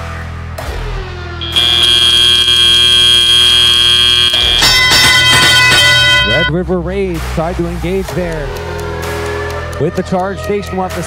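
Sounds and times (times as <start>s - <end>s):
loud high-pitched buzzer: 1.4s - 6.5s
arena music: 1.4s - 7.5s
ringing cue: 4.5s - 6.5s.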